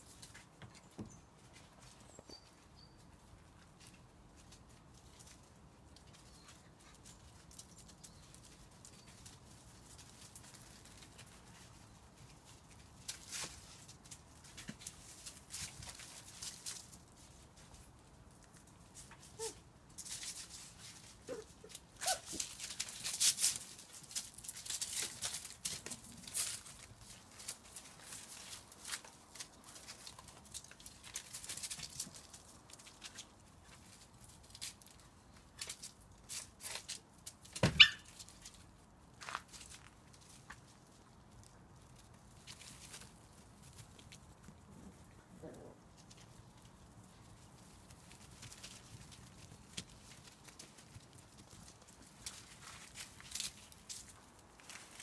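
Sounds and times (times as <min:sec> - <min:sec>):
rustling and clicking: 0:03.5 - 0:55.0
puppy yelping: 0:19.4 - 0:19.6, 0:21.2 - 0:22.4, 0:37.7 - 0:38.1.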